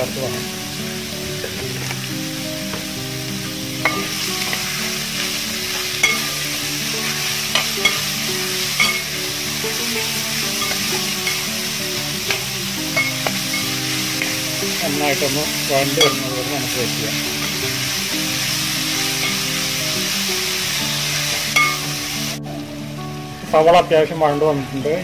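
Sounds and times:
shallots sizzling in oil: 0.0s - 22.9s
metal spatula scraping pan: 5.6s - 9.2s, 10.4s - 14.4s.

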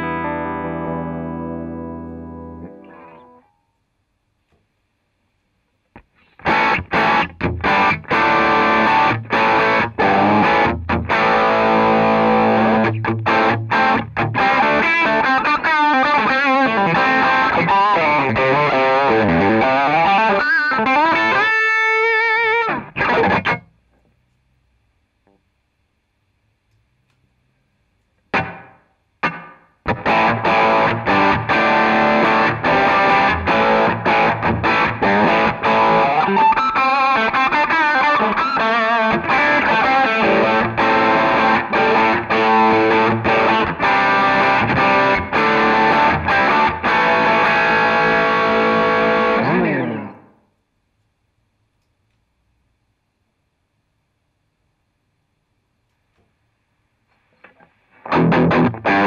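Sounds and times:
distorted electric guitar riffing: 0.0s - 3.4s, 6.3s - 23.7s, 28.3s - 50.4s, 57.4s - 59.0s
stabbed guitar chords: 0.0s - 3.4s, 6.0s - 23.8s, 28.3s - 50.4s, 57.4s - 59.0s.

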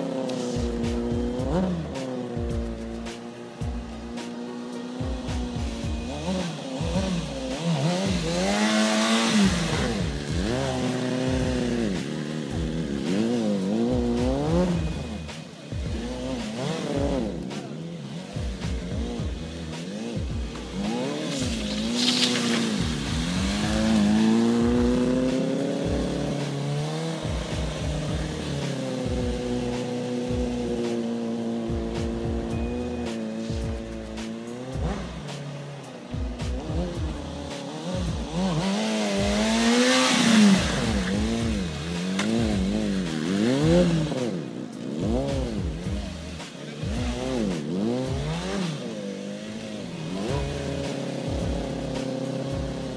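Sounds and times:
motorcycle engine revving: 0.0s - 52.9s
tire squeal: 19.6s - 31.0s.

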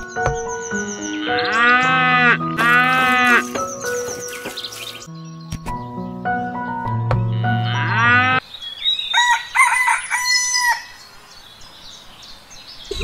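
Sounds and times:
light background music: 0.0s - 8.4s
sheep bleating: 1.3s - 3.5s.

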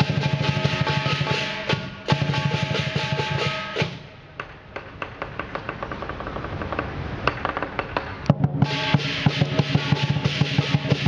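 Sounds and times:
cymbals crashing: 0.0s - 4.1s, 8.4s - 11.0s
drum beating: 0.0s - 6.0s, 7.6s - 11.0s.

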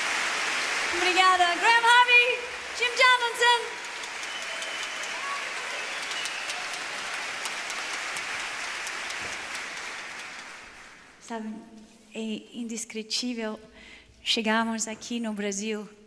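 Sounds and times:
audience applauding: 0.0s - 11.2s.

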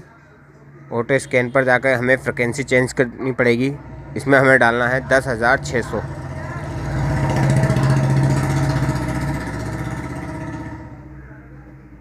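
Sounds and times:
vehicle engine passing by: 1.8s - 12.0s.

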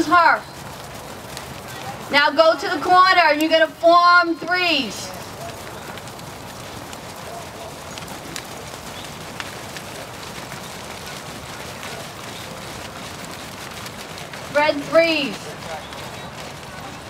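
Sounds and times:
muffled hoofbeats on sand: 0.0s - 17.0s
faint clicks: 5.4s - 14.5s.

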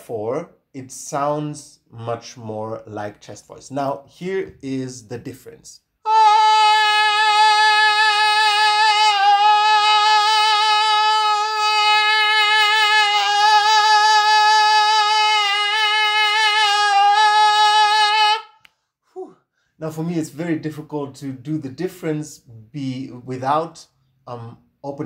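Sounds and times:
man singing long steady note: 6.0s - 18.6s.

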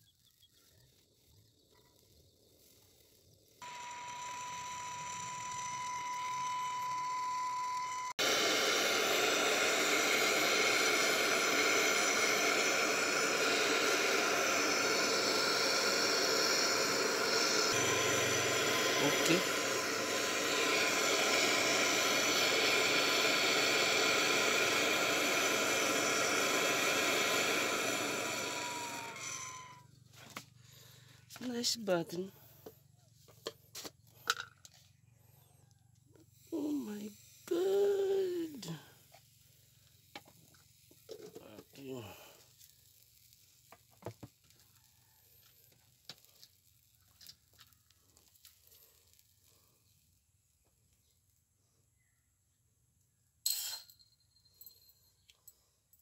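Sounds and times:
gas torch hissing: 2.1s - 32.6s, 36.4s - 44.6s.

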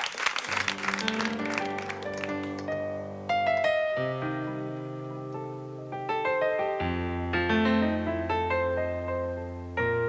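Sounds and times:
electronic keyboard playing: 0.5s - 10.0s.

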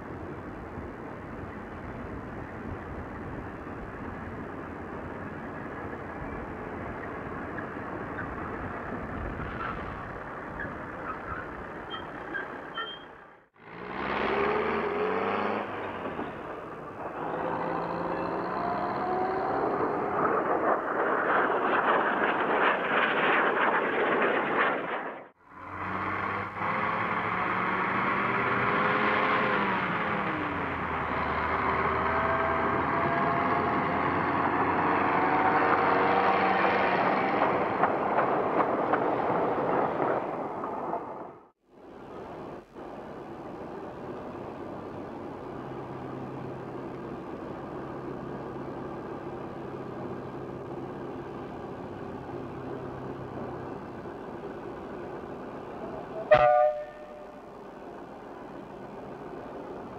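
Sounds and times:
diesel locomotive engine: 0.0s - 59.9s
train clattering along track: 36.7s - 41.4s.

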